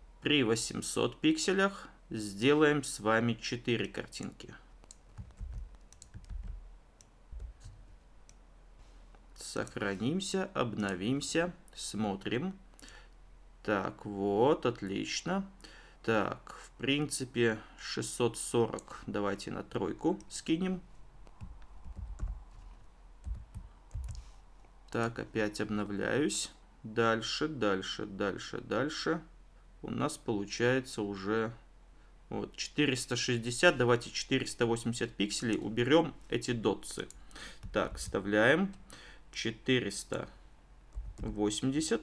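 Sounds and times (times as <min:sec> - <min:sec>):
computer keyboard typing: 0:04.2 - 0:07.9, 0:21.3 - 0:22.6, 0:23.2 - 0:24.2, 0:37.1 - 0:38.2, 0:40.9 - 0:41.4.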